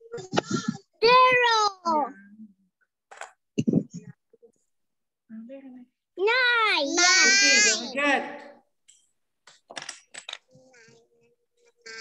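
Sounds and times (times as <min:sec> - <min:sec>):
faint children's voices: 0:10.4 - 0:12.0.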